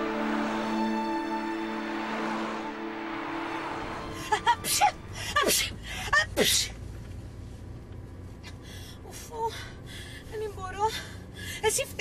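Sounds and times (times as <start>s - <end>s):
car cabin rumble: 4.2s - 10.9s.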